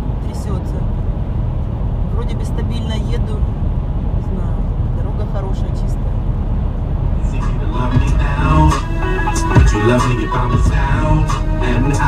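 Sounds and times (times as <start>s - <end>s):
car road and engine rumble: 0.0s - 12.0s
music with a beat: 7.3s - 12.0s.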